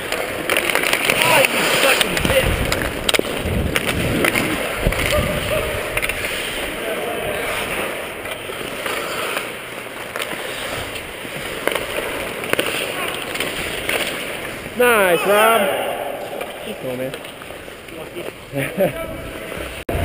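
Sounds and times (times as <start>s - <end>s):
sharp clicks of sticks and puck: 0.0s - 15.2s, 15.8s - 18.4s
skates scraping on ice: 0.0s - 18.6s.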